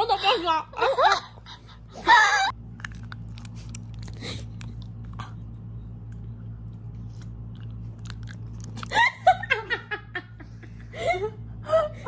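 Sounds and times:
low hum: 0.0 - 12.0
chewing crunches: 2.5 - 9.1
person laughing: 8.8 - 12.0.

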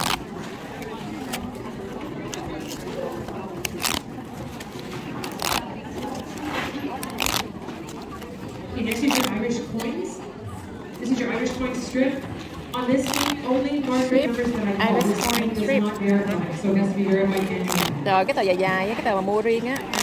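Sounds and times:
paper tabs tearing: 0.0 - 0.2, 3.6 - 4.1, 5.2 - 5.7, 7.0 - 7.5, 8.9 - 9.4, 13.0 - 14.1, 14.9 - 15.7, 17.3 - 17.9, 19.8 - 20.0
murmur of voices: 0.0 - 20.0.

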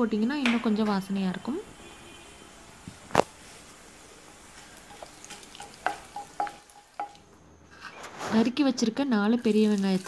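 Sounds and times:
seeds sizzling in hot oil: 3.2 - 7.2, 9.4 - 10.0
wooden spatula stirring: 3.4 - 7.2.

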